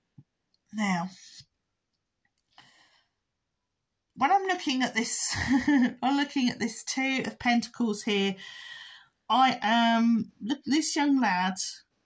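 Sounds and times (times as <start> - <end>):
woman speaking: 0.7 - 1.4, 4.2 - 8.5, 9.3 - 11.9
short breath in: 8.4 - 9.1.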